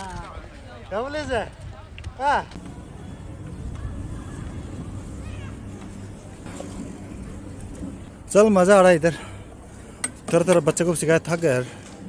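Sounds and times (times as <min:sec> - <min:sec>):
chairlift low rumble: 0:02.5 - 0:12.0.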